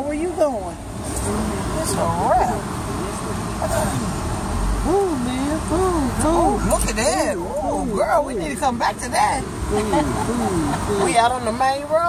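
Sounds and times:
faint voices: 0.0 - 12.0
tuk-tuk engine rumble: 0.0 - 12.0.

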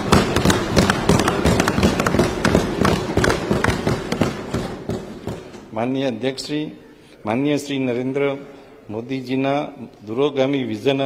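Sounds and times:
people thumping desks: 0.0 - 5.8.

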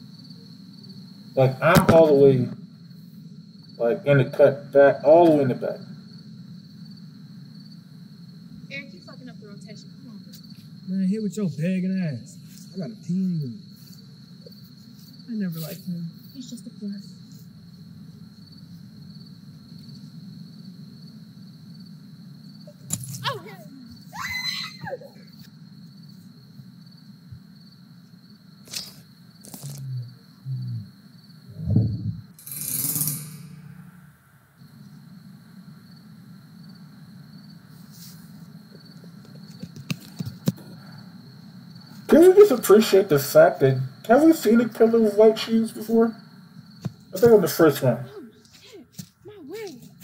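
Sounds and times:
crickets trilling: 0.0 - 50.0
low background hum: 0.0 - 50.0
low growling vocal sounds: 29.7 - 30.9, 31.5 - 32.3.

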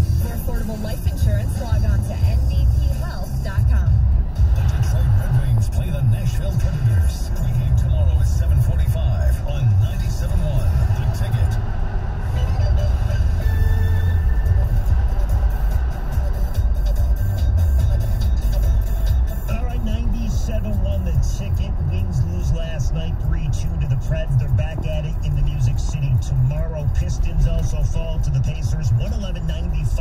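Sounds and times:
announcer talking on car radio: 0.0 - 15.4, 19.4 - 30.0
background music: 0.0 - 30.0
road and engine rumble: 0.0 - 30.0.

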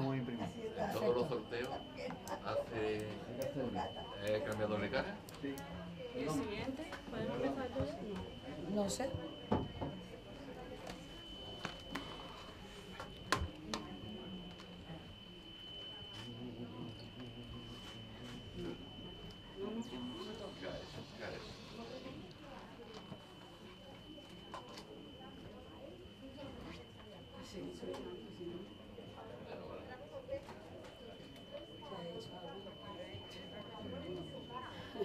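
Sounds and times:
faint high whine: 0.0 - 35.0
people talking indistinctly: 0.0 - 35.0.

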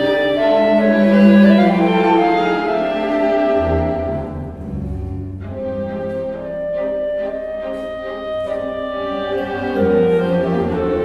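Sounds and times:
solo clarinet: 0.0 - 11.0
string orchestra playing: 0.0 - 11.0.

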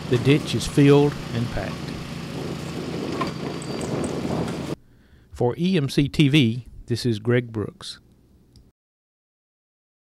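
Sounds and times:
blade pushing soil: 0.0 - 4.8
mini excavator engine running: 0.0 - 4.8.

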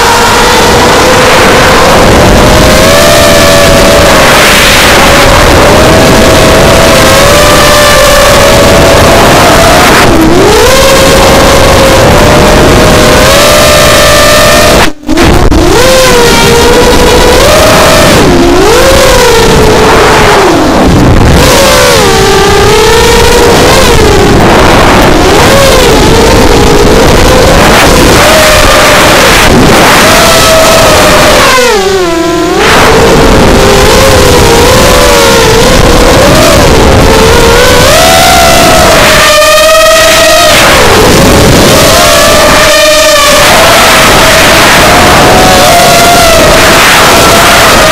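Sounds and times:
drone motors and propellers whining: 0.0 - 47.9.

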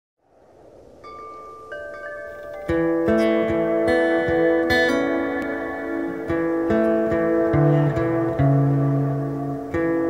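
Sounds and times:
soft hiss: 0.2 - 10.0
acoustic guitar notes with reverb: 1.0 - 10.0.

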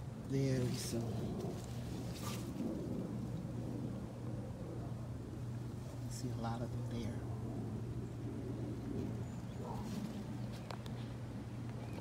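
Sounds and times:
low hum with rumble: 0.0 - 12.0.

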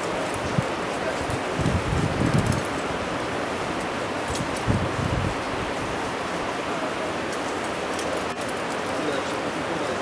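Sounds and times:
steady rushing outdoor noise: 0.0 - 10.0.

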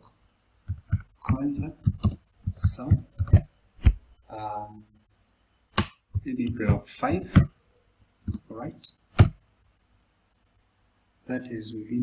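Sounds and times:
keyboard key knock: 0.7 - 4.0, 9.2 - 9.4.

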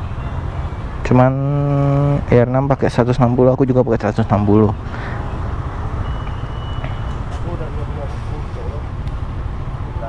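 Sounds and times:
thin high-pitched beep: 6.0 - 7.2.

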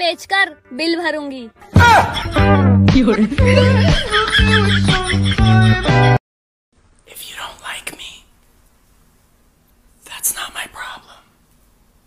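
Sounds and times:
person whispering: 7.0 - 8.3, 10.0 - 11.4.

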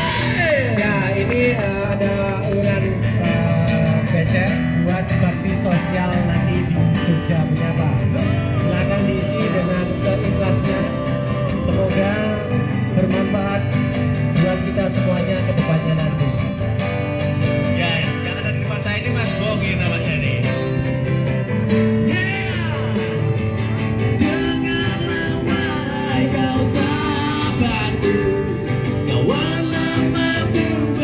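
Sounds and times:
acoustic guitar song: 0.0 - 31.0
person singing: 7.4 - 13.7, 22.0 - 31.0.

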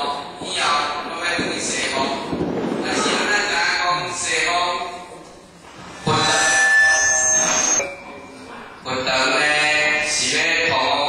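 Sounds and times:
loud multi-pitch ringing tone: 5.7 - 11.0.

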